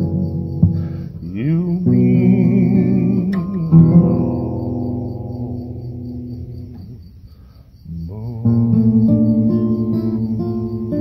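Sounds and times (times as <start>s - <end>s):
acoustic guitar strumming: 0.0s - 11.0s
crickets chirping: 0.0s - 11.0s.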